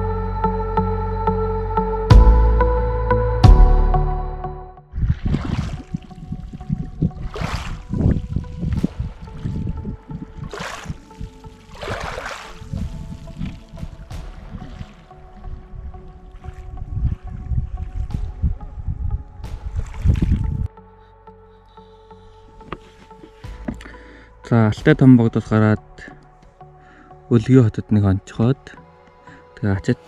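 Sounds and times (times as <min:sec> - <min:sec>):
soft background music: 0:00.0 - 0:30.0
wind rumble on microphone: 0:04.9 - 0:20.7
waves lapping on pebbles: 0:05.2 - 0:15.4.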